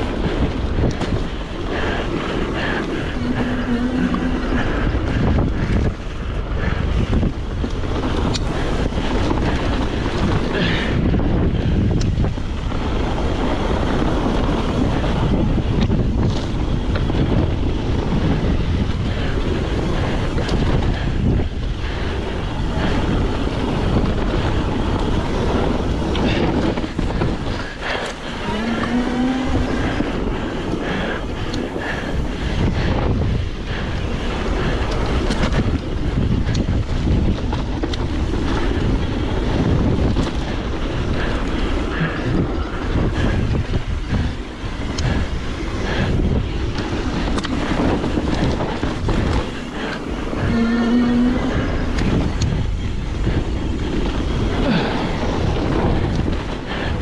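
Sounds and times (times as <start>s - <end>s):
bike chain and frame rattling: 0.0s - 57.0s
tyres rumbling on dirt: 0.0s - 57.0s
wind buffeting microphone: 0.0s - 57.0s.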